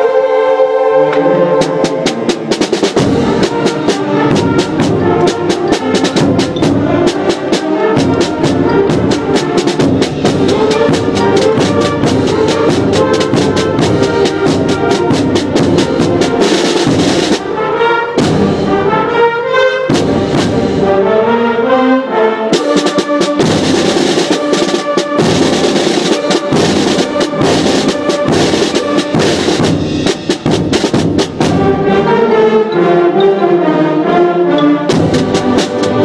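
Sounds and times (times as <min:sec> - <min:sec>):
concert band playing: 0:00.0 - 0:33.4, 0:34.1 - 0:36.0
drum and percussion strikes: 0:01.1 - 0:17.6, 0:18.2 - 0:19.0, 0:19.9 - 0:21.0, 0:22.5 - 0:32.0, 0:34.9 - 0:36.0.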